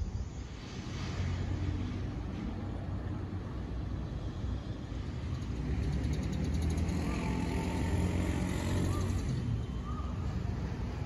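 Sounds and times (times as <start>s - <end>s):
passing vehicle engine rumble: 0.0s - 11.0s.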